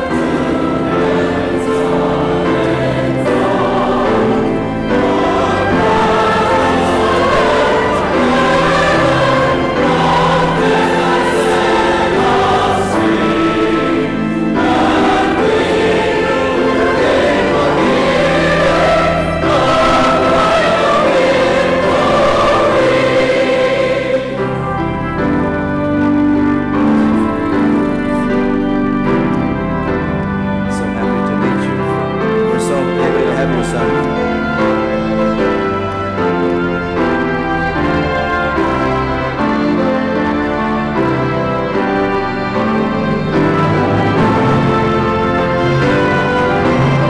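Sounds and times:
choir singing sacred music: 0.0 - 47.0.

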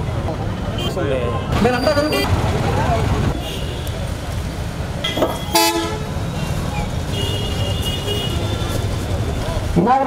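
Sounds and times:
street traffic rumbling: 0.0 - 10.0
vehicle horn: 5.4 - 6.1.

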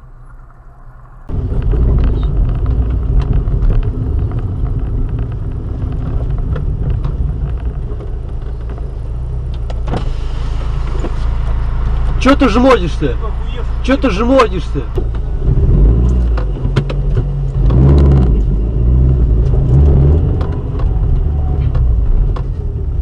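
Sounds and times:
car rumbling inside cabin: 0.0 - 23.0.

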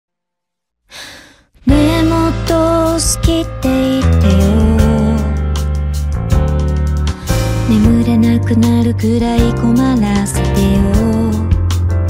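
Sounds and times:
singer breathing out: 0.9 - 1.6, 7.1 - 7.6
steady bass: 1.7 - 12.0.

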